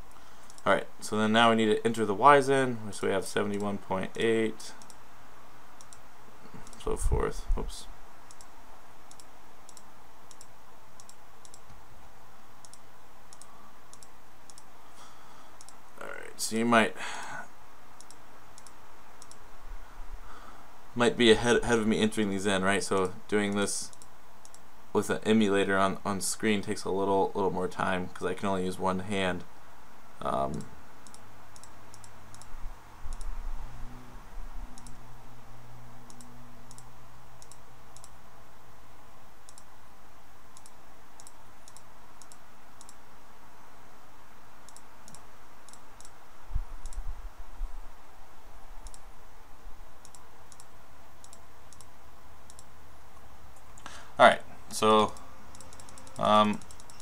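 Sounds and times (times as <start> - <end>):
computer mouse clicking: 0.0 - 0.7, 4.8 - 5.0, 5.8 - 6.0, 6.6 - 6.9, 8.2 - 8.5, 9.1 - 11.8, 12.6 - 14.7, 15.6 - 16.0, 18.0 - 19.4, 23.5 - 24.6, 30.5 - 33.4, 34.7 - 35.0, 36.0 - 38.2, 39.5 - 39.7, 40.6 - 43.0, 44.6 - 46.2, 46.8 - 47.1, 48.8 - 49.1, 50.0 - 54.0, 55.0 - 57.0.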